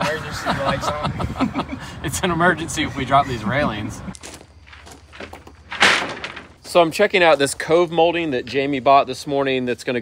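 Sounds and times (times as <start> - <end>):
road noise: 0.0 - 8.2
truck engine rumble: 1.2 - 8.2.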